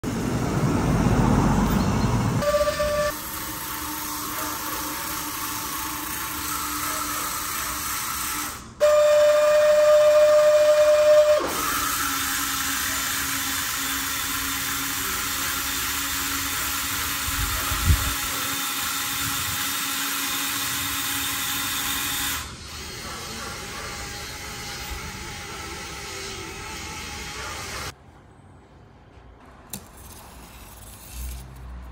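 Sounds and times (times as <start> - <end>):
small electric motors whining: 2.4 - 9.2, 9.8 - 27.9.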